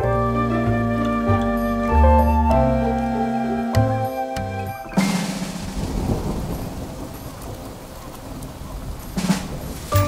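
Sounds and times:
steady rain: 0.0s - 10.0s
thunder rumbling: 1.7s - 10.0s.

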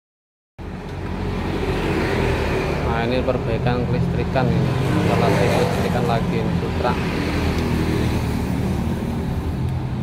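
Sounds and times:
motor vehicle engine hum: 0.6s - 10.0s.

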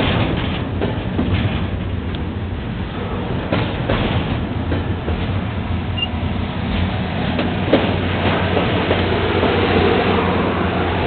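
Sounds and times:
steel wheels rumbling on rail: 0.0s - 11.0s
wheels clacking over rail joints: 0.0s - 11.0s.

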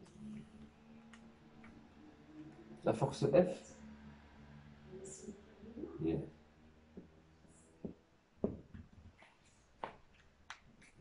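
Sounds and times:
steady low hum: 0.0s - 9.8s.

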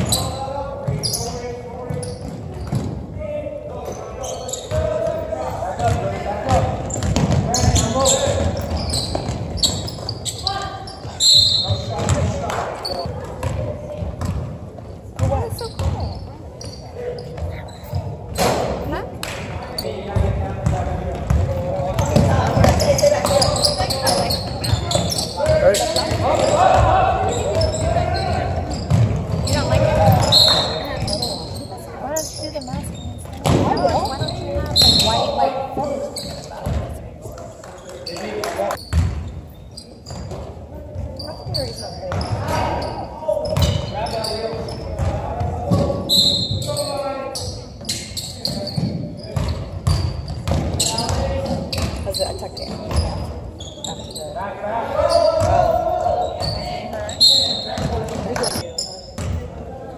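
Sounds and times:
basketball bouncing on hardwood: 5.8s - 7.5s, 15.2s - 16.0s, 48.8s - 52.0s.

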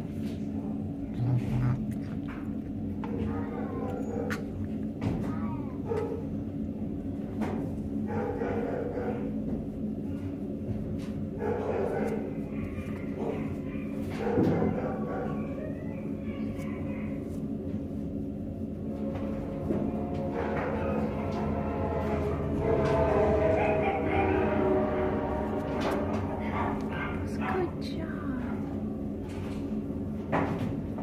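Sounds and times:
steady low hum: 0.0s - 31.0s
muffled voices: 0.2s - 6.4s, 11.5s - 29.7s
dog barks: 3.1s - 4.5s, 5.8s - 6.3s, 8.0s - 9.4s, 11.4s - 15.7s, 23.4s - 24.7s, 26.4s - 27.7s.

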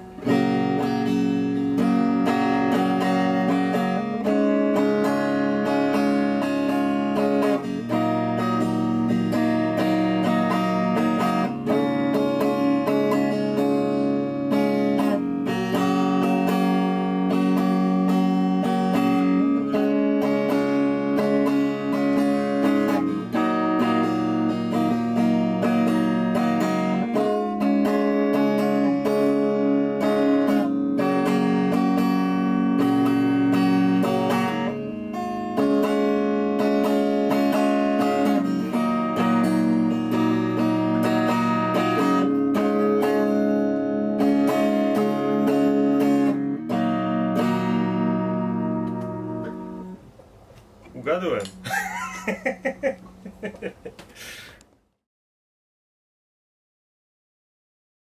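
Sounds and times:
electric guitar strumming chords: 0.0s - 54.2s.

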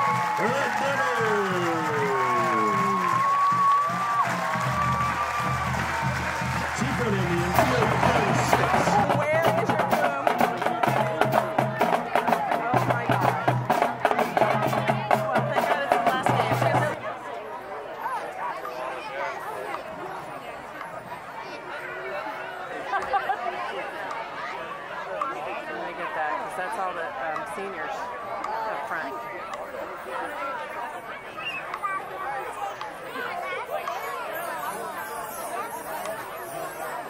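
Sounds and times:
drumline striking rhythms: 0.0s - 17.0s
crowd chatter: 0.0s - 37.0s.

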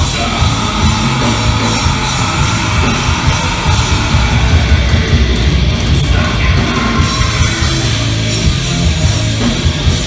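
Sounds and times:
distorted electric guitars: 0.0s - 10.0s
pounding drum kit: 0.0s - 10.0s.

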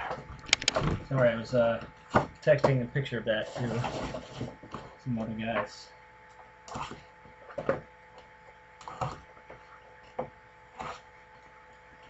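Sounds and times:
faint steady hum: 0.0s - 12.0s
cardboard boxes scraping and rustling: 3.4s - 4.9s.

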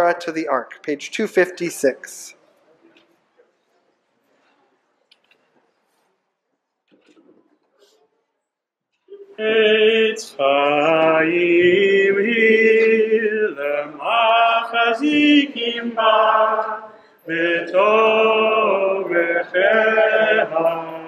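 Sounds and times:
man singing liturgical chant: 9.1s - 21.0s.

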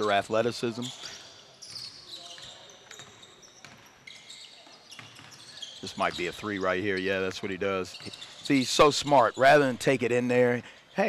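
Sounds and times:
sneaker squeaks: 0.0s - 9.7s
basketball bouncing: 2.9s - 3.9s.

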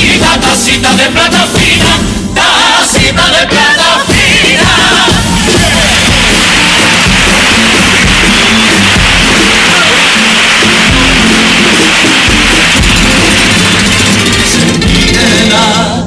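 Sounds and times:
guitars and drums playing: 4.1s - 16.0s.

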